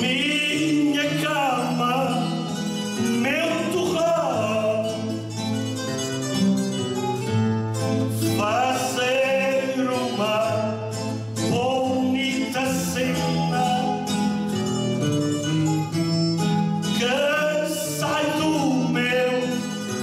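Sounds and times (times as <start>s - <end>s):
man singing into microphone: 0.0s - 5.3s, 8.1s - 14.4s, 16.8s - 20.0s
strummed acoustic guitars: 0.0s - 20.0s.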